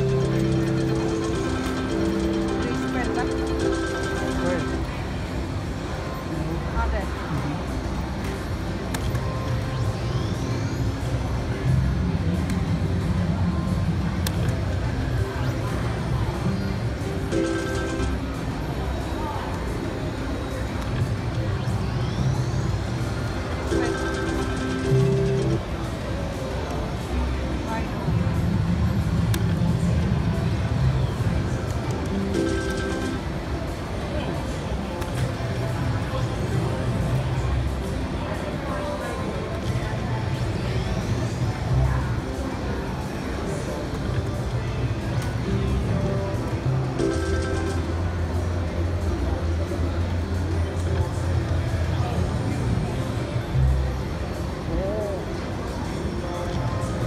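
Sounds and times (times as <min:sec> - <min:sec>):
slot machine electronic tones: 0:00.0 - 0:05.3, 0:17.0 - 0:18.7, 0:21.7 - 0:25.8, 0:32.1 - 0:33.6, 0:46.8 - 0:48.4
casino chatter: 0:00.0 - 0:57.0.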